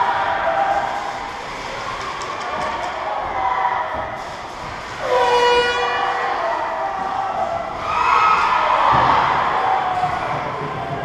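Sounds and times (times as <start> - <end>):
crowd cheering: 0.0 - 11.0
ice rink horn blast: 5.0 - 6.5.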